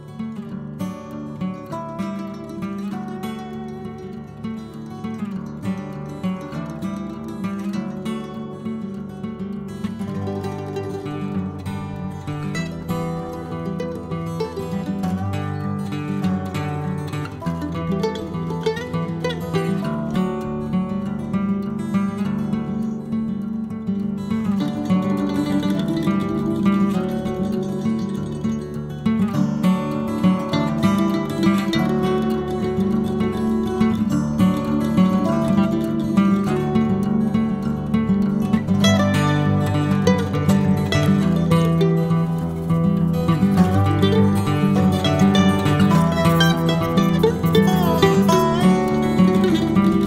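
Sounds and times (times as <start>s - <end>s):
acoustic guitar music: 0.0s - 50.0s.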